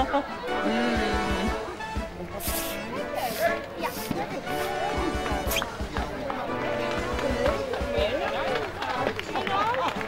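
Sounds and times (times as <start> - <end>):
background music: 0.0 - 10.0
people talking: 0.0 - 10.0.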